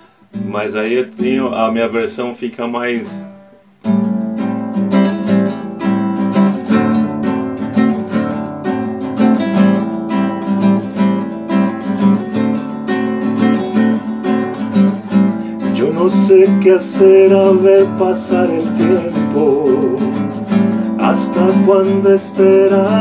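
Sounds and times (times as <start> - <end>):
acoustic guitar strumming: 0.0 - 23.0.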